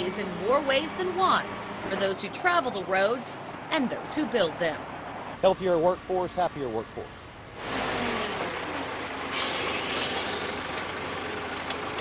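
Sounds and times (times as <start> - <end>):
backhoe engine rumble: 6.8 - 12.0.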